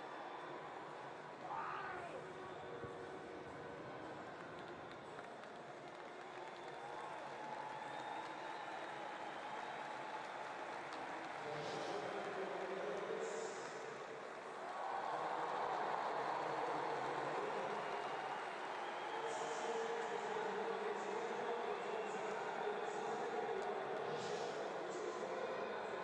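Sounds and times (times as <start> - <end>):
stadium crowd cheering: 0.0 - 26.0.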